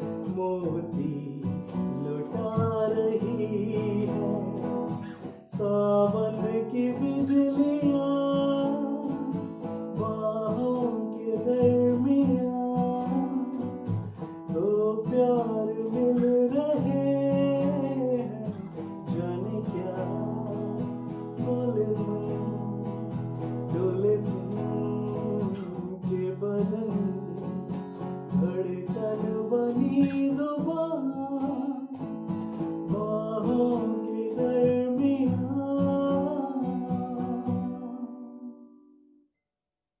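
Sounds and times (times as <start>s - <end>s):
man singing: 0.0s - 38.9s
acoustic guitar strumming: 0.0s - 39.3s.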